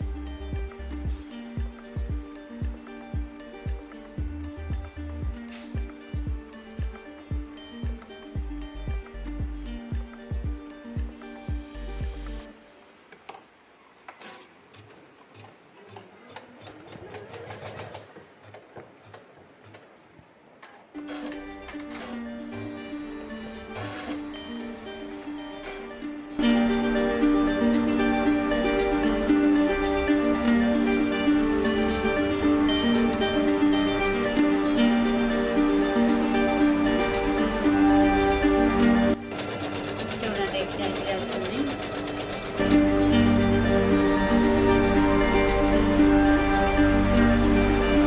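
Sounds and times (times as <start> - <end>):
background music: 0.0 - 13.6, 21.0 - 48.0
embroidery machine stitching: 14.2 - 18.6, 23.0 - 25.8, 38.8 - 43.9.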